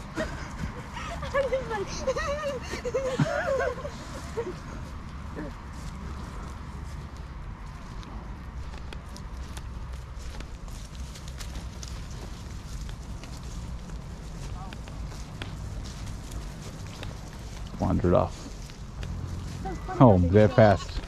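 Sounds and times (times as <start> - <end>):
footsteps running on grass: 0.0 - 21.0.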